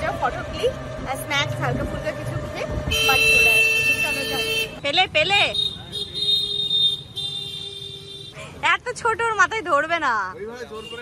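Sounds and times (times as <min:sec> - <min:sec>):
street traffic: 0:00.0 - 0:11.0
vehicle horn blasts: 0:02.9 - 0:04.8, 0:05.4 - 0:08.3, 0:10.7 - 0:11.0.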